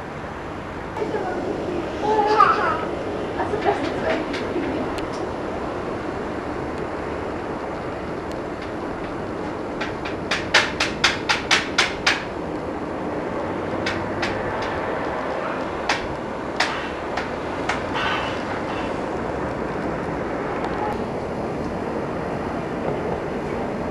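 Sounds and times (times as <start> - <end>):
outdoor background hum: 0.0 - 23.9
sharp knocks: 8.6 - 12.4, 13.8 - 15.2, 15.8 - 19.0.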